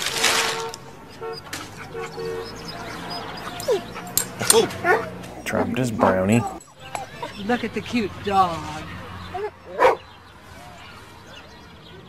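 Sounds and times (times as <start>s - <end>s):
dog barking: 1.1s - 7.6s, 9.3s - 10.1s.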